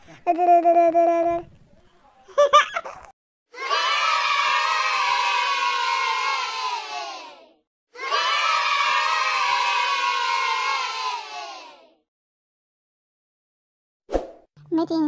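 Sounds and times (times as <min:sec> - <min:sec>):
children cheering and shouting: 0:03.5 - 0:12.0.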